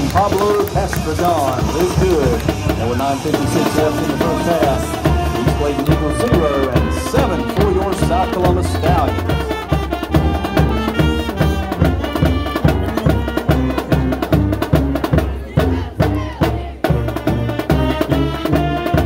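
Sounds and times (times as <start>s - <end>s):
sousaphone bass line: 0.0s - 14.9s
brass chords: 0.0s - 19.0s
steady drum beat: 0.0s - 19.0s.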